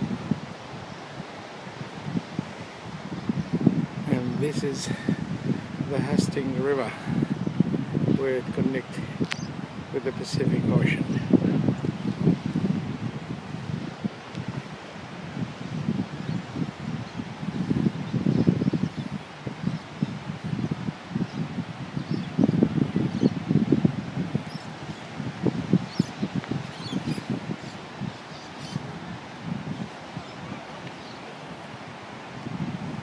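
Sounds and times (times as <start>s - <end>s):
wind buffeting the microphone: 0.0s - 33.0s.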